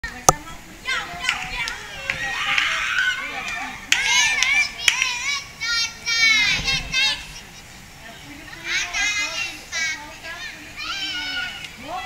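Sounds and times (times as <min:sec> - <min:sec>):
children shouting and shrieking: 0:00.8 - 0:07.8, 0:08.5 - 0:12.0.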